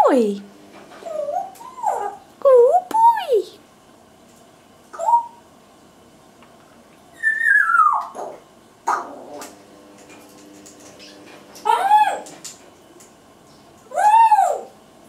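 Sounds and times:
parrot whistle-like calls: 5.0s - 5.4s, 7.1s - 8.3s.

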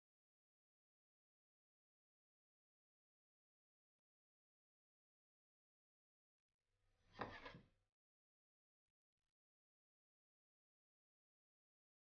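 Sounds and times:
picture frame scraping on wood: 7.2s - 7.6s.

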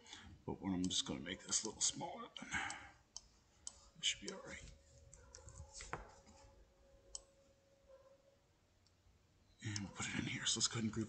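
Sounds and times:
computer mouse click: 7.1s - 7.3s.

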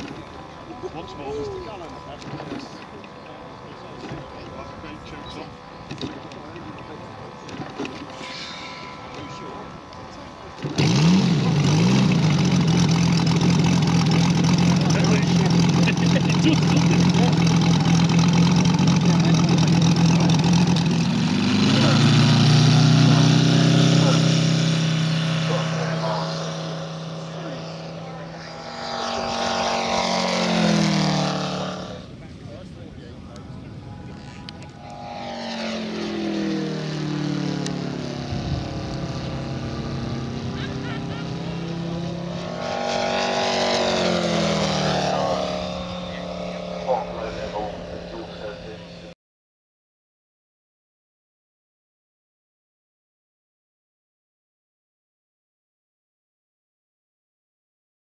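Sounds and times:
model airplane engine: 0.0s - 49.2s.

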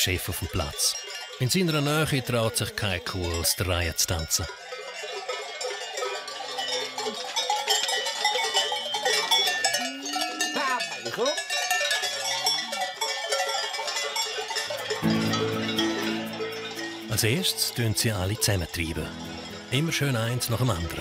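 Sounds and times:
cowbells clanging: 0.0s - 21.0s
music: 14.9s - 21.0s.

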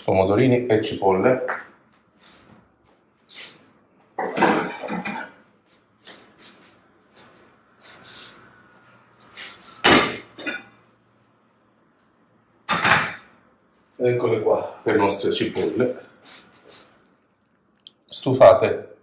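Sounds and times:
kitchen containers knocking and clattering: 4.2s - 5.4s.

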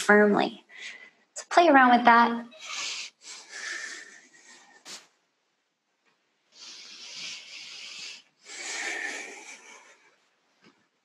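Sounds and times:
person breathing: 0.7s - 1.3s, 2.6s - 5.1s, 6.5s - 10.3s.

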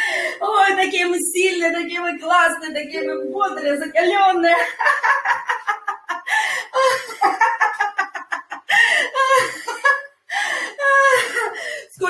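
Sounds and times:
woman laughing loudly: 4.6s - 10.1s.

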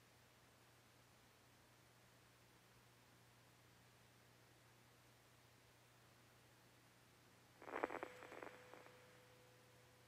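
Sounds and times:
faint steady tone: 0.0s - 10.0s
crackling clicks: 7.6s - 9.1s.

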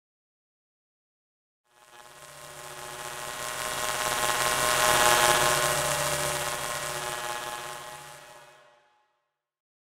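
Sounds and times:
buzzy electronic drone: 1.7s - 8.9s.

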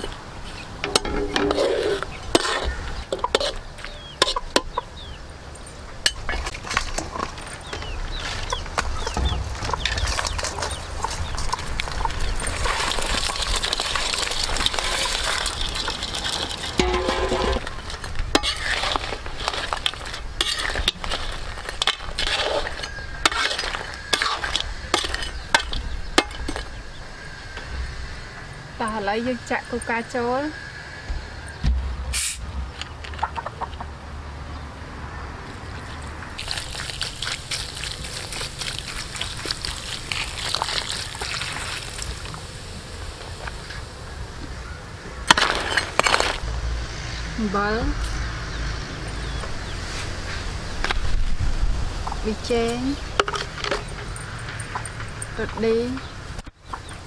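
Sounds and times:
chickens peeping and clucking: 0.0s - 18.3s, 29.8s - 34.6s, 52.0s - 57.0s
bottle cap hiss of gas: 32.1s - 32.4s.

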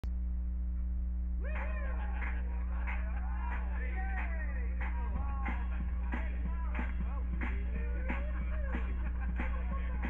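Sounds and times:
low electrical hum: 0.0s - 10.0s
song backing track: 1.4s - 10.0s.

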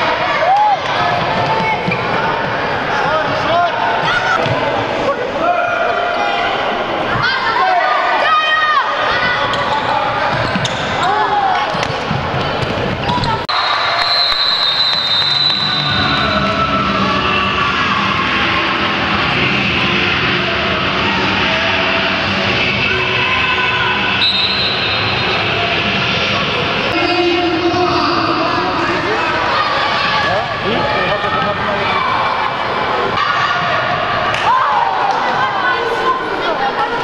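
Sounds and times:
children shouting and chattering: 0.0s - 13.5s, 25.0s - 37.0s.

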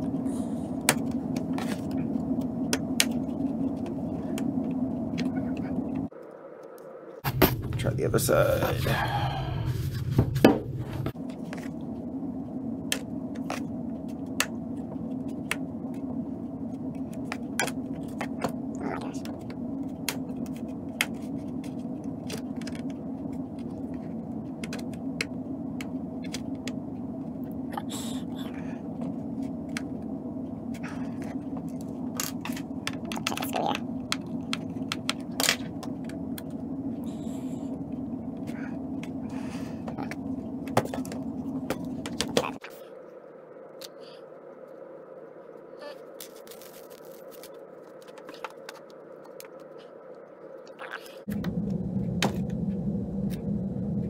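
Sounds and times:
low hum: 0.0s - 54.0s.

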